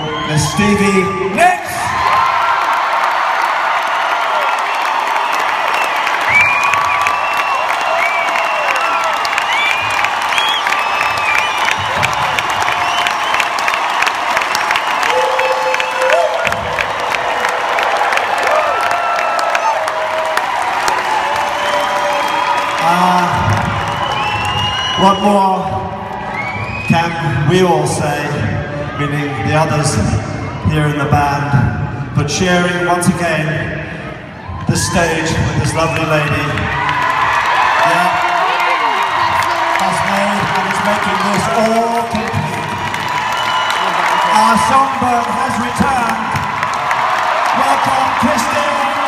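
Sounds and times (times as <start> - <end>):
crowd cheering and applauding: 0.0 - 31.0, 34.4 - 49.0.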